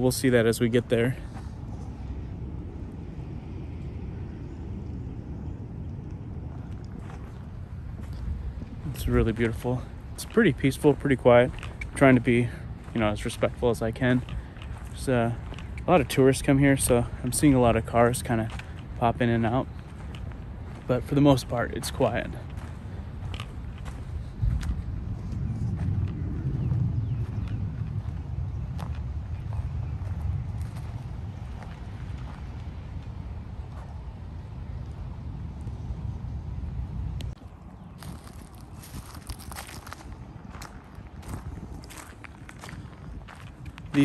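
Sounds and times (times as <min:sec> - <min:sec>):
footsteps outdoors: 0:00.0 - 0:03.8, 0:04.8 - 0:44.0
low rumble: 0:00.0 - 0:44.0.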